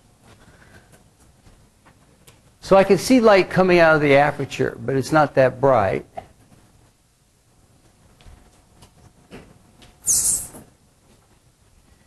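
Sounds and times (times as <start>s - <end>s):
short loud hiss: 10.0s - 10.7s.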